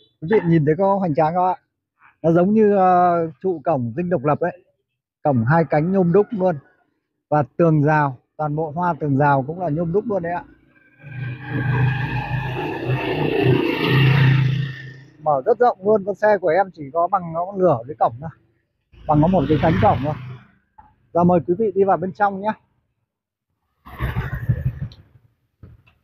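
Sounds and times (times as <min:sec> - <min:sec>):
motor scooter riding past: 0:10.8 - 0:15.2.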